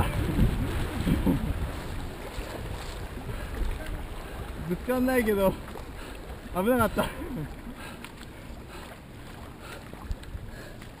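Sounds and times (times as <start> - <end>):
water rushing and splashing: 0.0 - 11.0.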